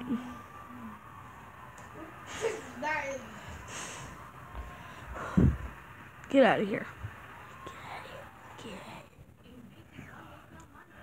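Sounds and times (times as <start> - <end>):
quiet low voices: 0.0 - 3.9, 7.5 - 11.0
faint whispering: 7.6 - 11.0.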